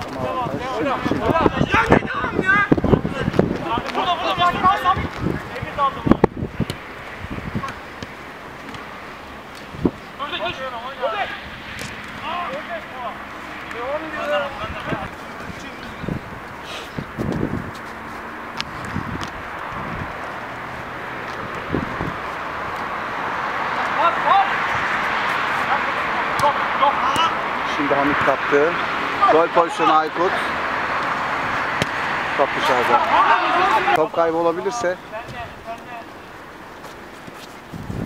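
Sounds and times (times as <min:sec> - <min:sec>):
wind noise on microphone: 0:00.0 - 0:07.8, 0:09.7 - 0:10.1, 0:14.6 - 0:20.7, 0:21.4 - 0:22.8, 0:37.4 - 0:38.0
players calling out: 0:00.0 - 0:17.2, 0:17.8 - 0:37.0
ball kicked thuds: 0:31.8 - 0:32.0.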